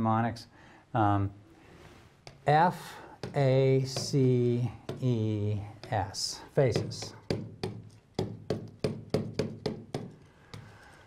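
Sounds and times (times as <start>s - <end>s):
stylus tapping on glass screen: 3.2s - 10.7s.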